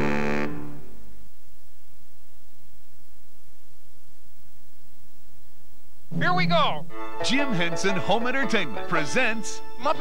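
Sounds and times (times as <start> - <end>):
faint tape hiss: 0.0 - 10.0.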